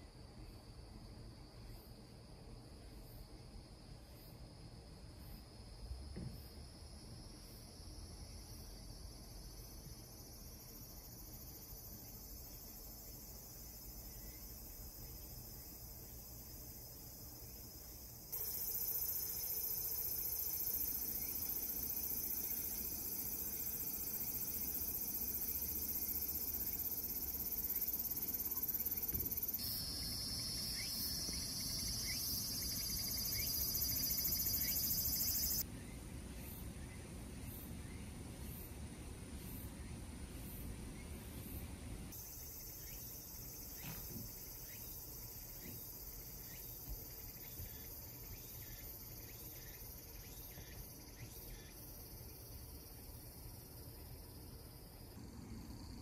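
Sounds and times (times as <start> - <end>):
insects trilling: 1.5 - 38.7, 41.4 - 56.0.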